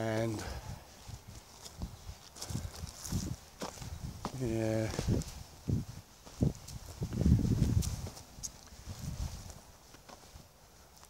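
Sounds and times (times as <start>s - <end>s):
footsteps on woodland path: 0.0s - 11.0s
vegetation crackling underfoot: 0.0s - 11.0s.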